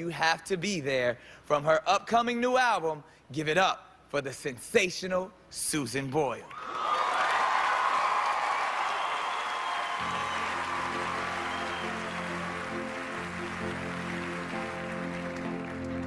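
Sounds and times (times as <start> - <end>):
audience applause and cheering: 6.5 - 16.0
soft instrumental sustained chords: 10.0 - 16.0.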